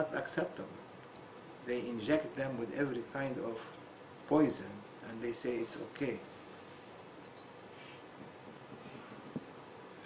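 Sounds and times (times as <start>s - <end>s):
man speaking: 0.0s - 0.8s, 1.6s - 6.3s.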